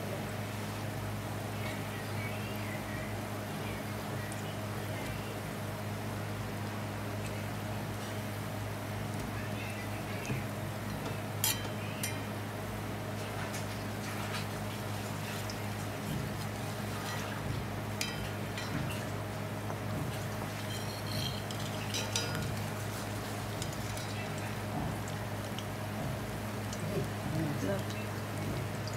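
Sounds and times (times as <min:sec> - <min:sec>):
low steady hum: 0:00.0 - 0:28.9
metal skimmer clinking on wok: 0:11.1 - 0:12.3, 0:18.0 - 0:18.8, 0:20.6 - 0:22.6
fritters sizzling in hot oil: 0:13.6 - 0:28.9.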